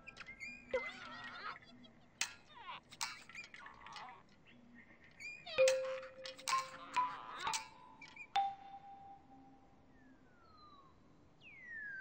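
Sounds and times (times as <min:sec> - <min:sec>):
bell-like struck note ringing: 0:05.6 - 0:07.2, 0:08.4 - 0:09.6.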